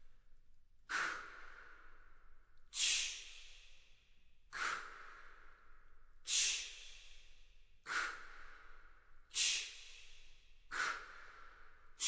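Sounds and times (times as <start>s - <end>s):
men making breathy hissing exhalations: 2.8s - 3.2s, 6.3s - 6.6s, 9.3s - 9.7s.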